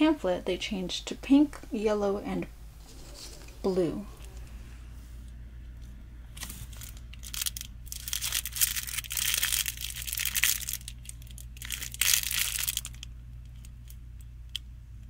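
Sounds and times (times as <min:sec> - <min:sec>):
steady low hum: 0:00.0 - 0:15.0
plastic wrapper crinkling: 0:06.4 - 0:14.6.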